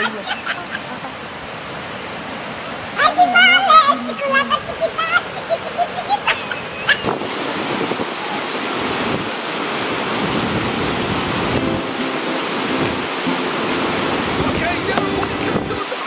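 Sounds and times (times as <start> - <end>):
waterfall roaring: 0.0 - 16.0.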